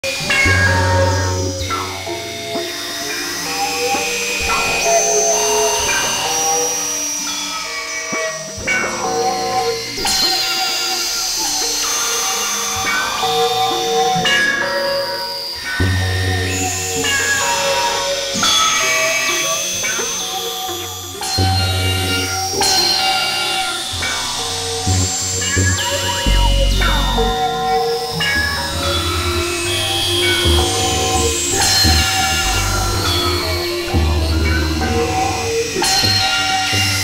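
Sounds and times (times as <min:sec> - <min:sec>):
synthesizer drones: 0:00.0 - 0:37.0
deep bass drone: 0:24.0 - 0:37.0.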